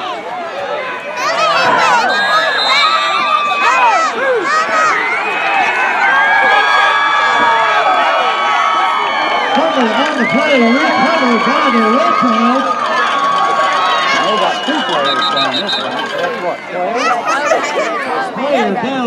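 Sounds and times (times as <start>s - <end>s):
crowd cheering and yelling: 0.0s - 19.0s.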